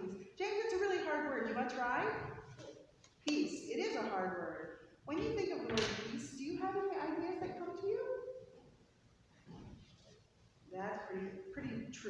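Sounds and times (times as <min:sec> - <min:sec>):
woman speaking: 0:00.0 - 0:02.4, 0:03.3 - 0:08.3, 0:10.7 - 0:12.0.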